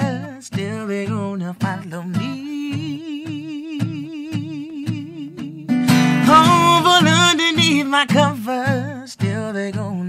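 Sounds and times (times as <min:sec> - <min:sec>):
strummed guitar chords: 0:00.0 - 0:10.0.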